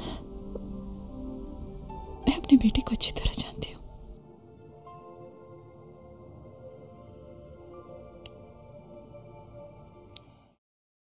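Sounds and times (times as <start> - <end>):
soft background music: 0.0 - 10.6.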